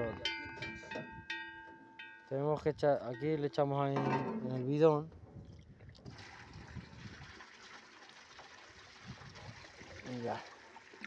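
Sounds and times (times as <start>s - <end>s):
water trickling into a tub: 5.4s - 11.0s.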